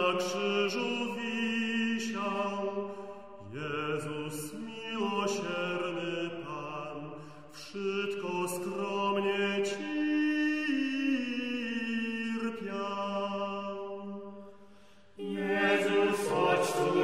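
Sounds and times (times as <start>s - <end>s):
vocal ensemble singing a hymn: 0.0s - 17.0s.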